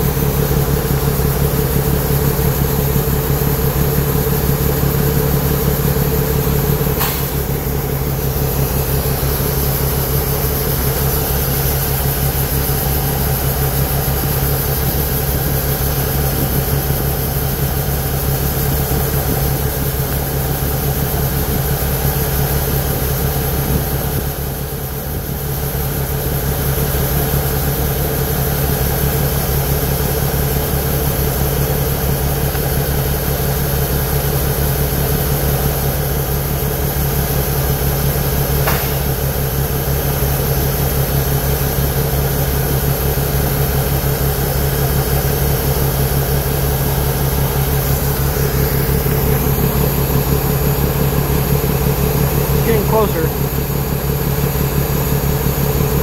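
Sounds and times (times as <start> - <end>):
diesel engine droning: 0.0 - 56.0.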